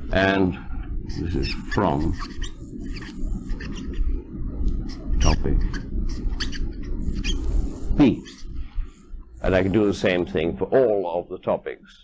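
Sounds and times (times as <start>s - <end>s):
steady low hum: 0.0s - 12.0s
pen squeaking on writing surface: 1.2s - 4.0s, 4.9s - 7.6s.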